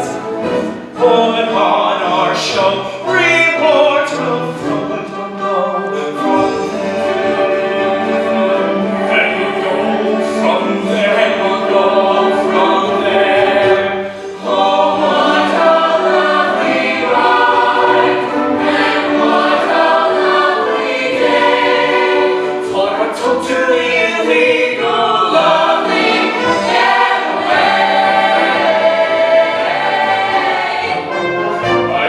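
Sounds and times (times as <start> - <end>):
ensemble singing: 0.0 - 32.0.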